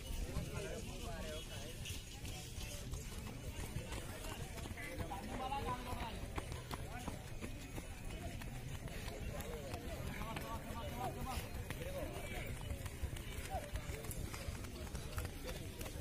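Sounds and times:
faint voices talking: 0.0 - 16.0.

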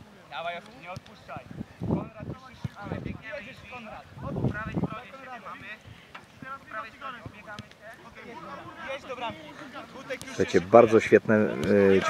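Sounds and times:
wind on microphone: 1.4 - 3.3, 4.0 - 5.0.

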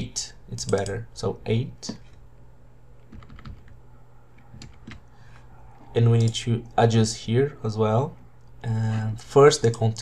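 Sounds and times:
faint low hum: 0.0 - 10.0
keyboard keys clicking: 3.0 - 3.8, 4.4 - 5.1.

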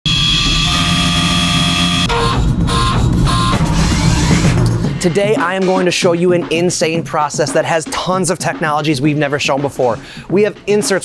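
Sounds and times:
short pulses: 0.1 - 5.0
music: 0.1 - 11.0.

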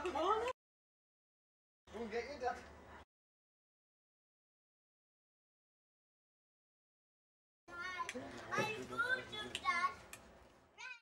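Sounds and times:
children talking and laughing: 7.7 - 10.2.

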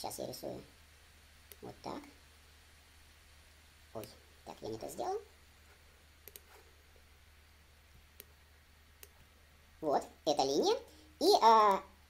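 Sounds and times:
computer mouse clicks: 6.2 - 6.6, 8.1 - 8.4, 9.0 - 9.3.

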